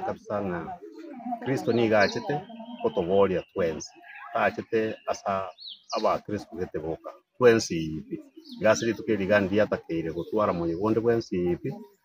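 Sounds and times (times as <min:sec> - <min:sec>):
man speaking: 0:00.0 - 0:11.8.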